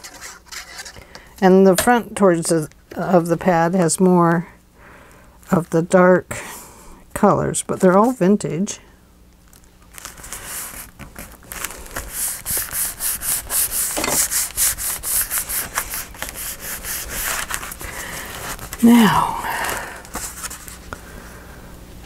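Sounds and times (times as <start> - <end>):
hand rubbing paper page: 9.9 - 18.8, 20.1 - 20.9.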